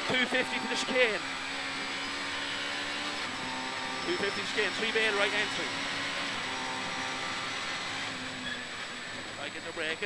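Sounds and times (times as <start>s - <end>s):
car engine running hard: 0.0s - 10.0s
road noise: 0.0s - 10.0s.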